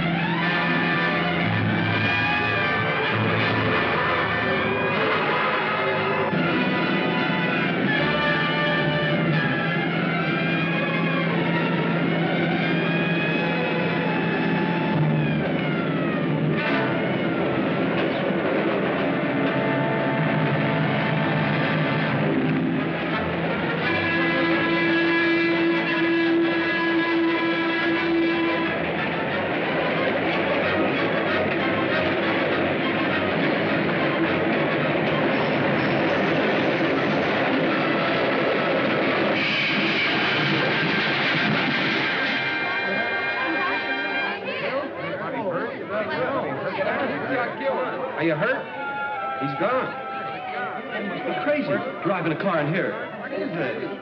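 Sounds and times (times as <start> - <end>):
dramatic orchestral music: 0.0 - 44.8.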